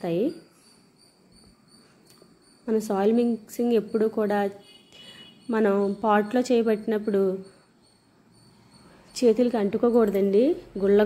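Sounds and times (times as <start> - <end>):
woman speaking: 0.0 - 0.5, 2.7 - 4.6, 5.5 - 7.6, 9.1 - 11.0
faint high-pitched tone: 0.0 - 11.0.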